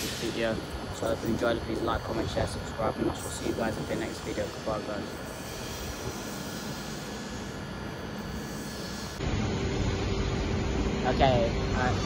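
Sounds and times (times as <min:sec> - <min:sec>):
railway station rumble: 0:00.0 - 0:12.0.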